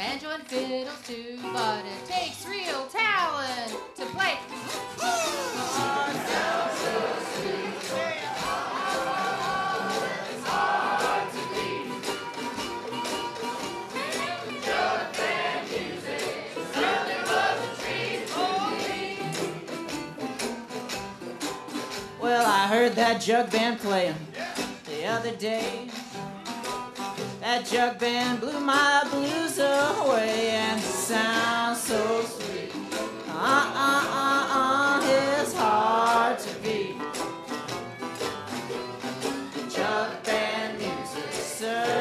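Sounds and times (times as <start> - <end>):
jug band playing: 0.0 - 42.0
plucked strings strumming: 0.0 - 42.0
people singing chorus: 5.4 - 12.5, 14.0 - 19.6, 30.8 - 37.2, 39.5 - 42.0.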